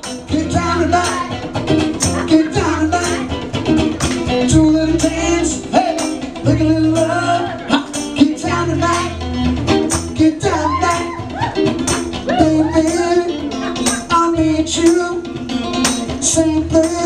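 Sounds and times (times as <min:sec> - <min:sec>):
drum beat: 0:00.0 - 0:17.0
electric guitar: 0:00.0 - 0:17.0
held bass notes: 0:00.0 - 0:17.0.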